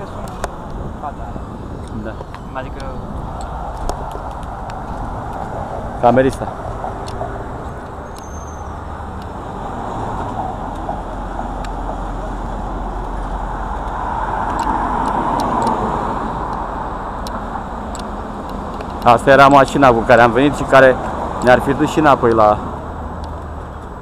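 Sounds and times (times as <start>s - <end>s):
cars passing: 0.0s - 24.0s
loud vehicle passing: 0.0s - 24.0s.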